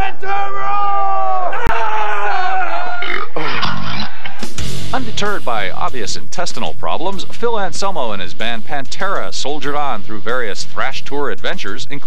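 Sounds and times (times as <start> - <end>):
man belching into microphone: 2.9 - 4.3.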